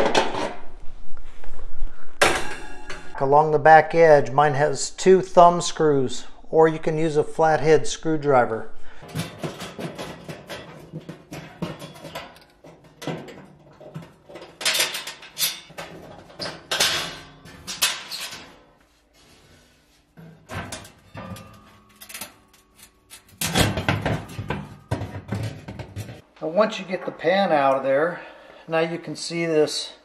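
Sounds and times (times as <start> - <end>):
sheet metal scraping and clattering: 9.0 - 18.8, 20.0 - 26.2.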